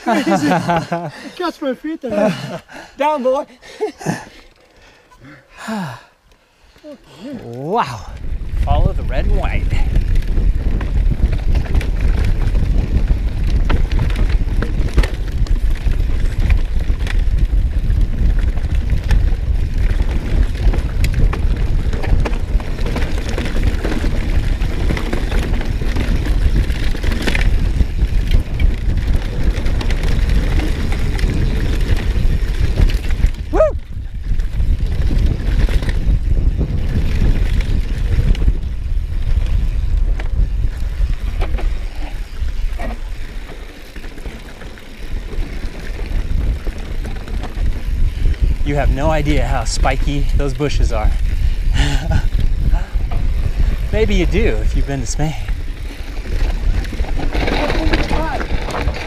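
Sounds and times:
bike rattling over rocks: 7.6 - 59.0
wind buffeting microphone: 7.6 - 59.0
tyre rumble: 56.2 - 59.0.

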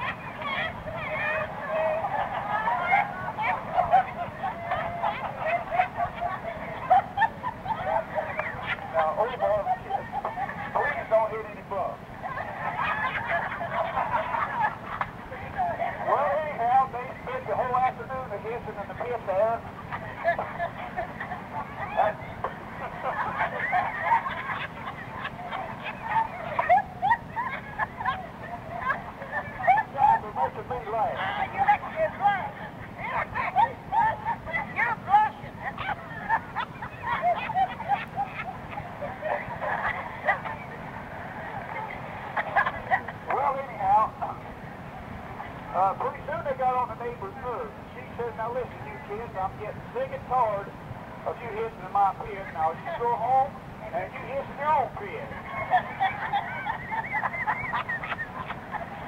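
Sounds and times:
passengers laughing and talking: 0.0 - 59.0.

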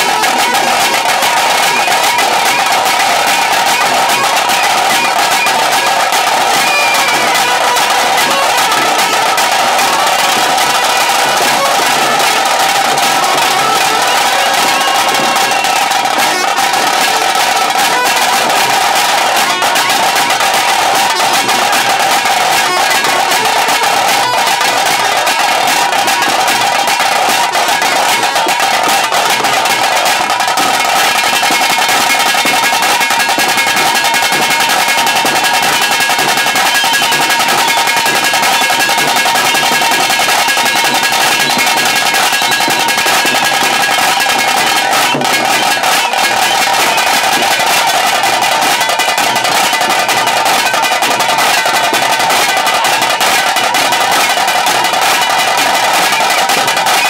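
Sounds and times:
drum band playing fast rhythm: 0.0 - 57.0.

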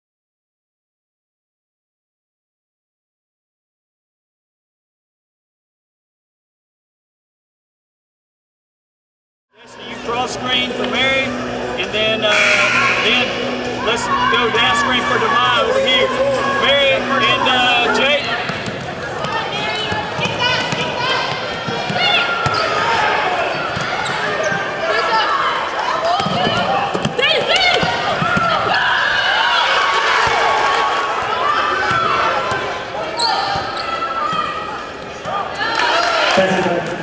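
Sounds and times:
voices calling out: 11.2 - 25.1.

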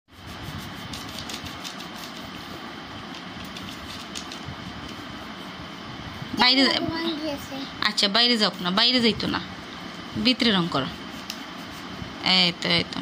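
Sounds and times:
crayon scratching on paper: 0.1 - 2.6, 3.4 - 5.5, 10.4 - 12.0.

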